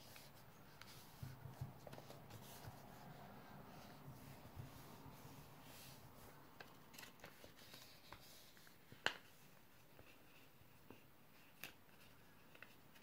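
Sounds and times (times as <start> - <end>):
paper crinkling and tapping: 0.0 - 2.8, 6.5 - 13.0.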